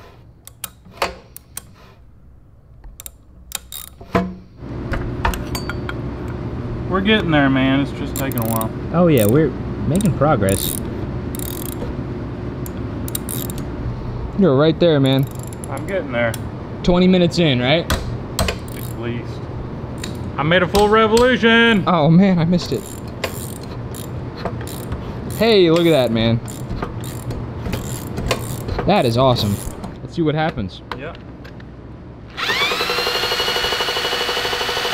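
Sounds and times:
steady low hum: 0.0s - 34.4s
hand ratchet clicking: 2.9s - 4.0s, 8.2s - 9.4s, 10.0s - 11.8s, 13.1s - 13.6s, 15.0s - 16.4s, 18.4s - 19.0s, 22.7s - 28.7s, 29.4s - 29.8s.

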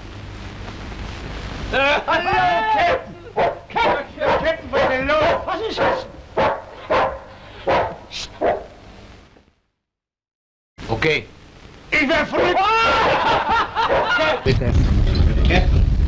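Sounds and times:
dog barking rapidly: 2.8s - 8.8s, 13.8s - 14.4s.

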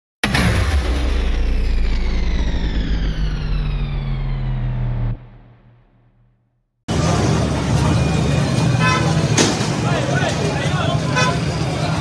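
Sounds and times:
deep steady drone: 0.2s - 8.8s
tones sliding downward in pitch: 0.8s - 6.3s.

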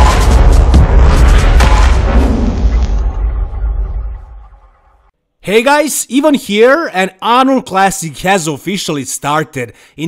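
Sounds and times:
deep rumble: 0.0s - 5.1s.

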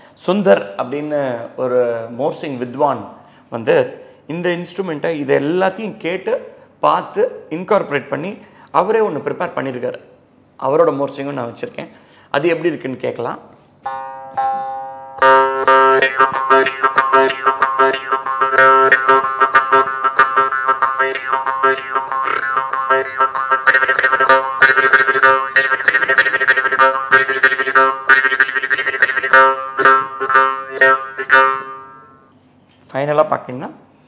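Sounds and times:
jaw harp twanging: 13.9s - 32.1s.

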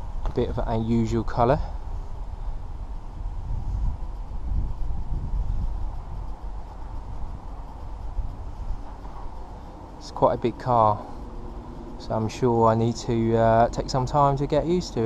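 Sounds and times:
faint steady tone: 0.0s - 15.0s
wind buffeting microphone: 0.0s - 15.0s.

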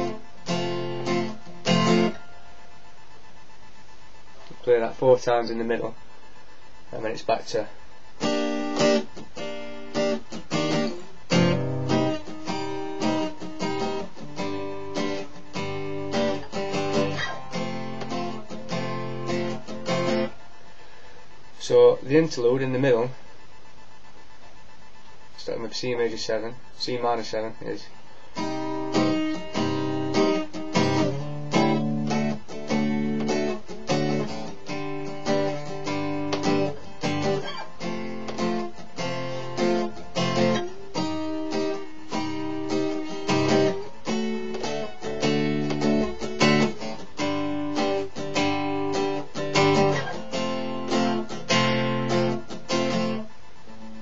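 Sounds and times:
acoustic guitar strummed: 0.0s - 3.0s, 7.0s - 21.0s, 27.0s - 54.0s.

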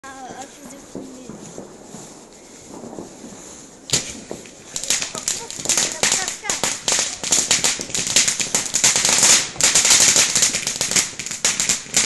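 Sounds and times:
people talking indistinctly: 0.0s - 1.4s, 4.2s - 7.9s
steady high hiss: 0.1s - 12.0s.

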